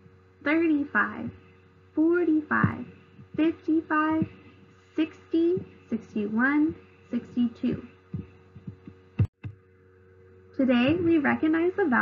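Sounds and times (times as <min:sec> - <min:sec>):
low electrical hum: 0:00.0 - 0:12.0
soft low thumps: 0:01.0 - 0:09.7, 0:10.6 - 0:11.5.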